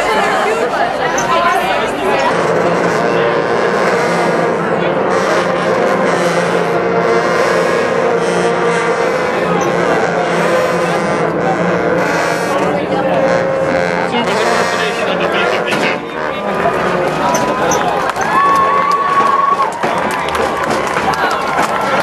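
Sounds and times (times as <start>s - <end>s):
crowd chattering and calling out: 0.0s - 22.0s
long held brass notes: 1.4s - 22.0s.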